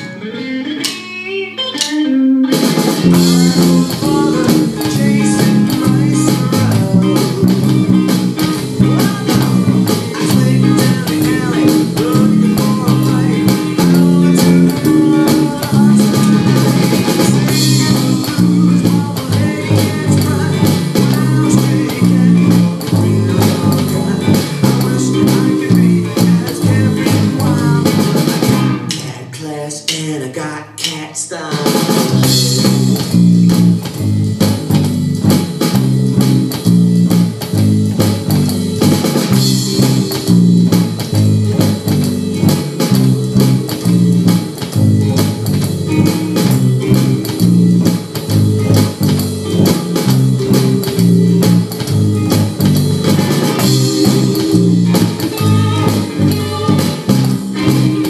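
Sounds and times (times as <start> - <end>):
electric bass playing: 0.0 - 29.0, 32.0 - 58.0
electronic drum beat: 1.8 - 30.2, 30.8 - 58.0.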